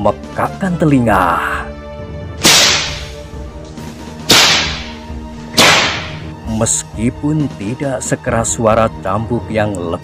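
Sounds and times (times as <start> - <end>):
soft background music: 0.0 - 10.0
whip cracks: 2.4 - 3.2, 4.3 - 5.0, 5.6 - 6.2.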